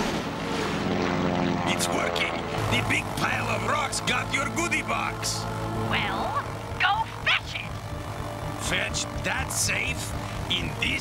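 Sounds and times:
cartoon propeller engine droning: 0.0s - 11.0s.

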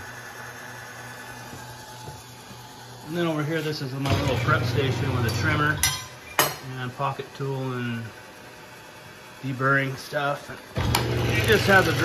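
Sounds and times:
electric motor hum: 0.0s - 5.8s, 6.9s - 12.0s
gas torches hissing: 0.0s - 5.8s, 6.7s - 12.0s.

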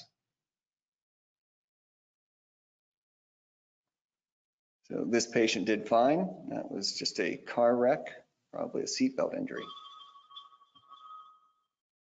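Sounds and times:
two-pitch electronic tone: 9.5s - 11.6s.

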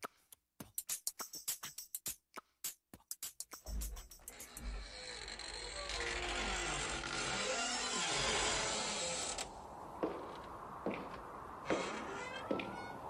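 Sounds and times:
slow creak with falling pitch: 4.2s - 13.0s.

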